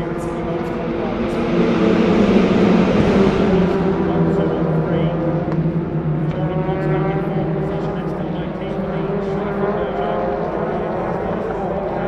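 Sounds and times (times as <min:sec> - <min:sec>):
racing car engines: 0:00.0 - 0:12.0.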